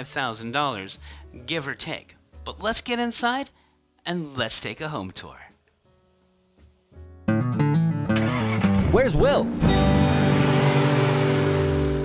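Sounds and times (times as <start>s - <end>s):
cartoon car engine hum: 8.1s - 12.0s.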